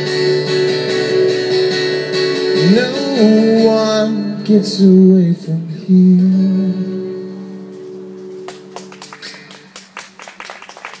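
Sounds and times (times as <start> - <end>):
guitar chord ringing: 0.0 - 9.8
people clapping: 8.4 - 11.0.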